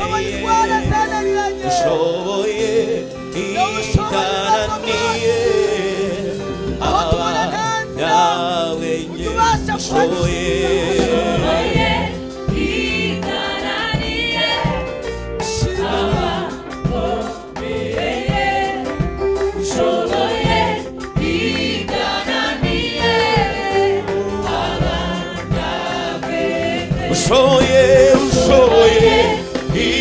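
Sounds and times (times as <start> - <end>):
live band accompaniment: 0.0 - 30.0
mixed choir singing gospel: 0.0 - 30.0.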